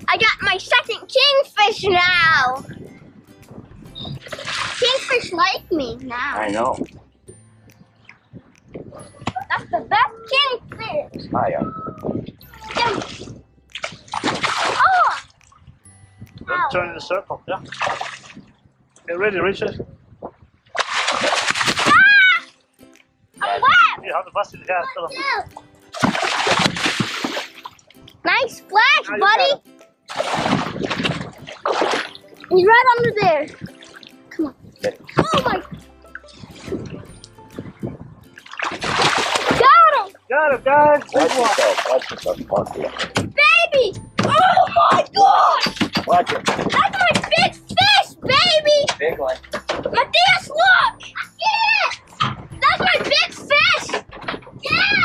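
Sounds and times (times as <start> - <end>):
water sloshing against boat hull: 3.9 - 7.1, 25.4 - 27.9, 30.1 - 40.2, 40.8 - 50.8
fish splashing water: 4.2 - 5.2, 12.6 - 15.8, 17.6 - 18.5, 20.7 - 22.6, 25.5 - 28.2, 30.1 - 32.5, 33.2 - 34.3, 38.3 - 40.2, 41.0 - 43.2.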